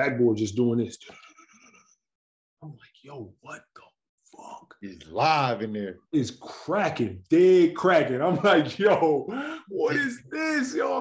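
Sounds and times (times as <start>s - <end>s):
man speaking: 0.0s - 1.4s, 2.6s - 11.0s.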